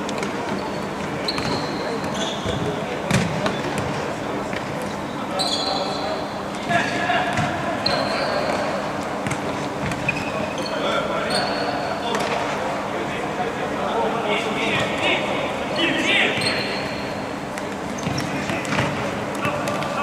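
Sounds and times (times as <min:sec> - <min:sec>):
high shoe squeaks: 0:00.5 - 0:02.8, 0:05.3 - 0:06.2, 0:07.8 - 0:08.9, 0:09.8 - 0:12.0, 0:16.2 - 0:18.6.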